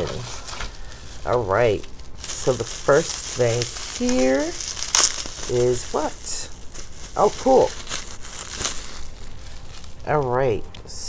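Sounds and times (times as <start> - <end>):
bubble wrap rustling and crinkling: 0.0 - 11.0.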